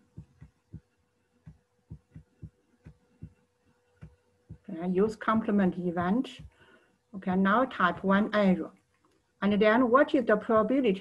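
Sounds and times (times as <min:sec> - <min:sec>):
stylus tapping on tablet screen: 0:00.0 - 0:06.7
faint steady hum: 0:00.0 - 0:11.0.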